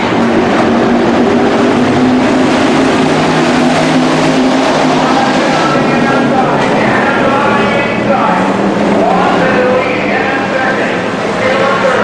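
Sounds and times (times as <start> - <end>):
race car engines running hard: 0.0 - 12.0.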